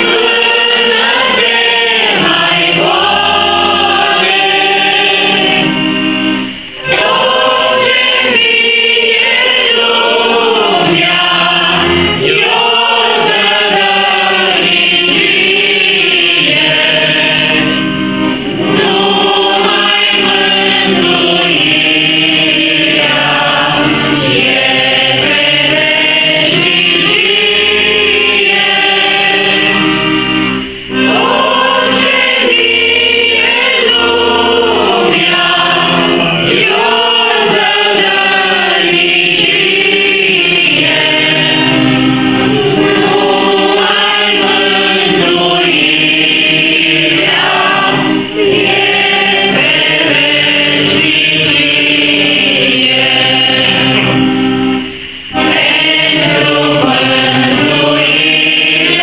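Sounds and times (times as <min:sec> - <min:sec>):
group singing a hymn: 0:00.0 - 0:59.0
piano accordion: 0:00.0 - 0:59.0.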